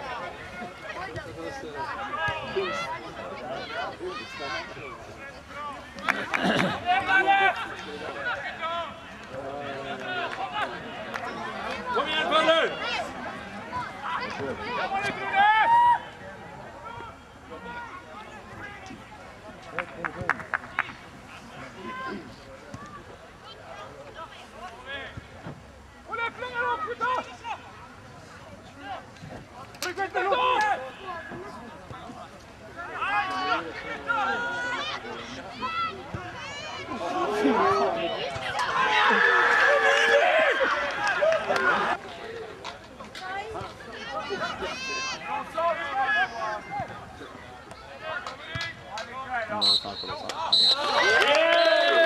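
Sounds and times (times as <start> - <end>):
voices shouting and calling out: 0.0 - 52.0.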